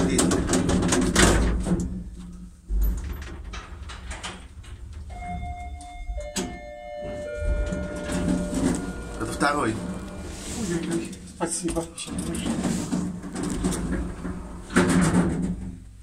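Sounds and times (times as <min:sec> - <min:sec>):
elevator hum: 0:02.6 - 0:15.6
elevator thump: 0:02.7 - 0:11.2
electronic arrival chime: 0:05.2 - 0:10.4.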